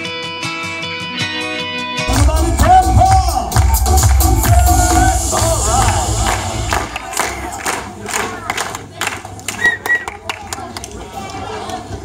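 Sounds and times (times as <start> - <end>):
dance music with heavy bass: 2.1 - 7.6
crowd shouting: 2.2 - 9.0
sharp claps: 5.3 - 11.8.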